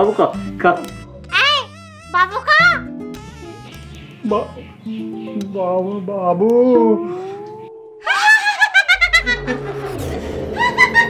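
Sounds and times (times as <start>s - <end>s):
woman's shrill cackling laugh: 8.0s - 11.0s
low drone of background score: 9.0s - 11.0s.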